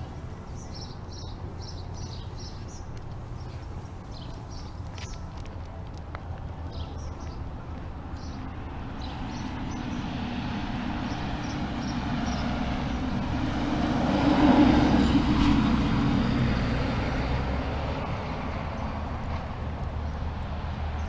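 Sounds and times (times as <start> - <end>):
vehicle engine and tyre noise: 0.0 - 21.0.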